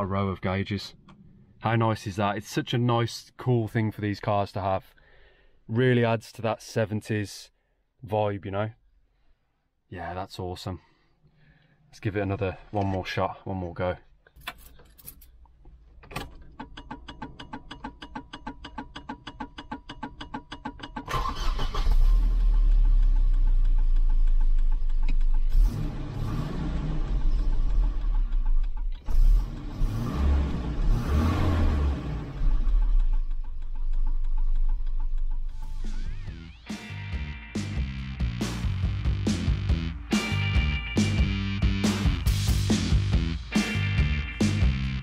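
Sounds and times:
engine starter cranking: 16.0s - 26.0s, 32.2s - 36.4s
car engine revving: 21.1s - 45.0s.

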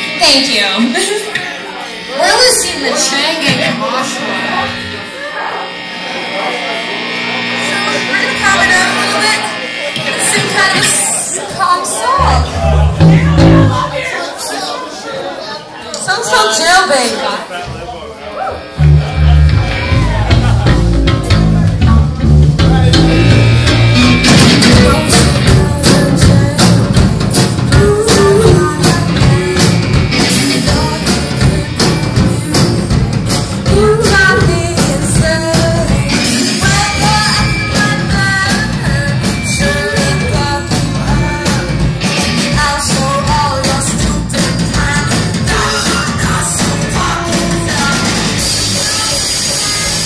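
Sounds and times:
amplifier buzz and hum: 0.0s - 14.0s, 18.7s - 48.8s
punk rock band playing: 0.0s - 14.2s, 18.7s - 50.0s
indistinct voices: 0.0s - 50.0s
drums and cymbals: 10.1s - 14.0s, 18.8s - 50.0s.

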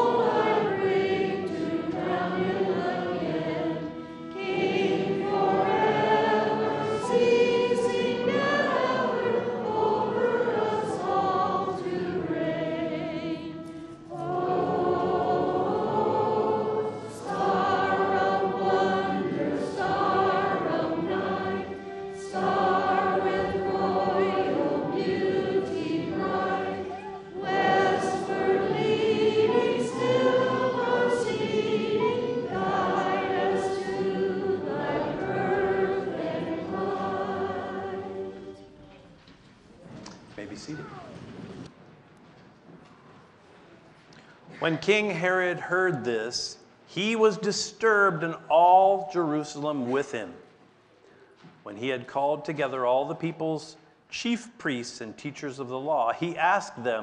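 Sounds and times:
congregation singing a hymn: 0.0s - 39.7s, 44.4s - 50.6s, 51.5s - 57.0s.

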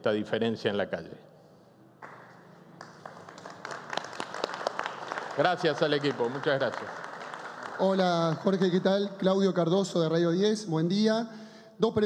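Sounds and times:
hand claps: 2.0s - 8.5s.

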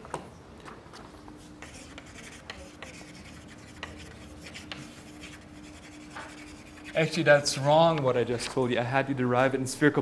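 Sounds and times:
chalk writing on chalkboard: 1.4s - 7.4s.

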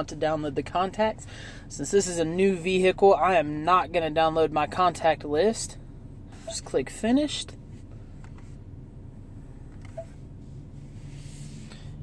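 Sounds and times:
low steady car cabin hum: 0.0s - 12.0s.

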